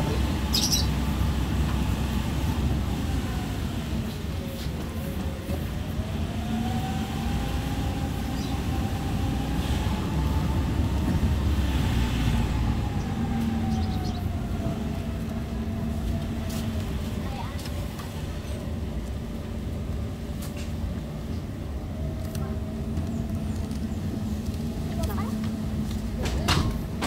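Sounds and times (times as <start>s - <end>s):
car engine and tyre rumble: 0.0s - 27.0s.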